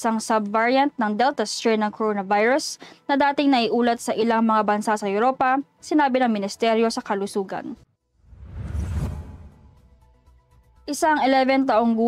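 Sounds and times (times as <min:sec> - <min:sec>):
deep rumbling whoosh: 0:08.2 - 0:10.1.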